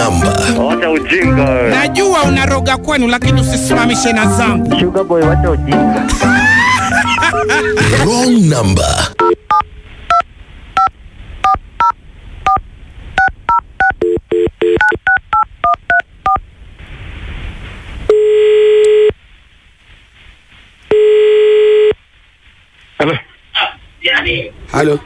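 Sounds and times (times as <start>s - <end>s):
hiss on phone line: 16.6s - 24.0s
telephone ringback tones: 18.1s - 19.1s, 20.9s - 22.0s.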